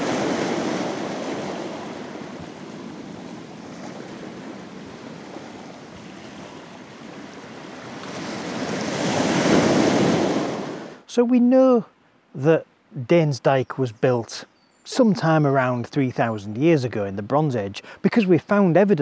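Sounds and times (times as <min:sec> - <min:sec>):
waves washing onto pebble beach: 0:00.0 - 0:11.0.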